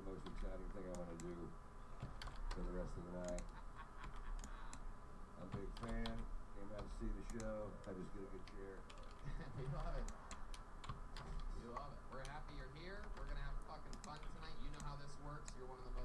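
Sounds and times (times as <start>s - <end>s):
keyboard keys clicking: 2.0s - 2.6s, 3.2s - 4.8s, 5.5s - 6.2s, 6.8s - 12.4s.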